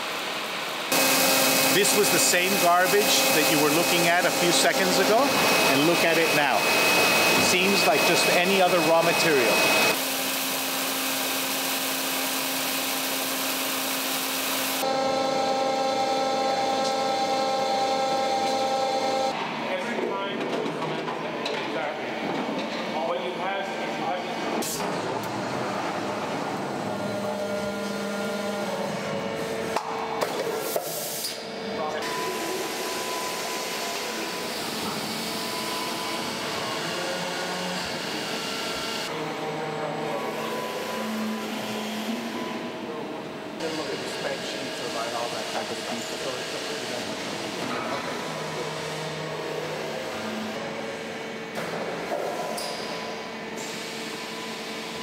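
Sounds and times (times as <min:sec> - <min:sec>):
machines humming with held tones: 0:00.9 - 0:19.6, 0:31.6 - 0:45.0.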